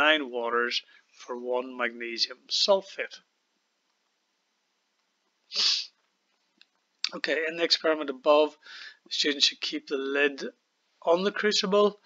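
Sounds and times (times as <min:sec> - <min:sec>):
sharp burst of breath: 0:05.5 - 0:06.0, 0:08.6 - 0:09.1.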